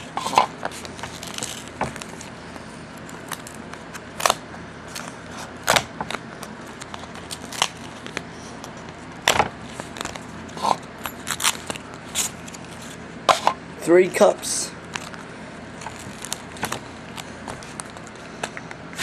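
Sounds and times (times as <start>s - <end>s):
packing material crinkling: 0.2s - 13.0s, 14.8s - 18.3s.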